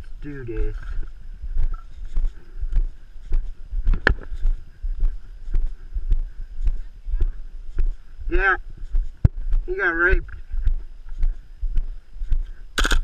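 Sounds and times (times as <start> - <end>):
footsteps on leaves and asphalt: 0.0 - 8.2, 8.8 - 9.8, 10.4 - 13.0.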